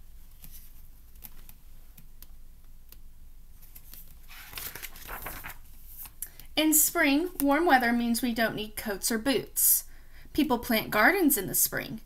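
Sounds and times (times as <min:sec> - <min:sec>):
book pages clicking: 0:00.3 - 0:03.0, 0:03.7 - 0:06.2.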